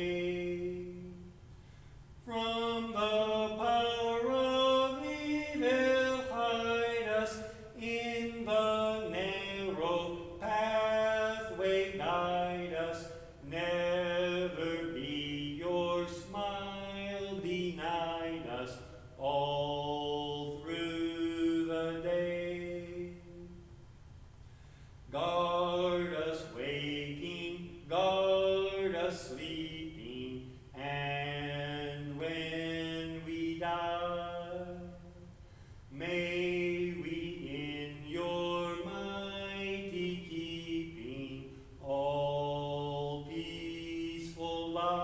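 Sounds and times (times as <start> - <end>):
man chanting liturgy: 0.0 - 1.4, 2.2 - 23.7, 25.1 - 35.3, 35.9 - 45.0.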